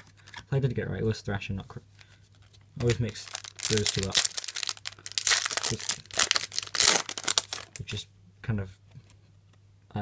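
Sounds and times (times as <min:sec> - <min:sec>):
foil wrapper crinkling: 0:03.0 - 0:07.9.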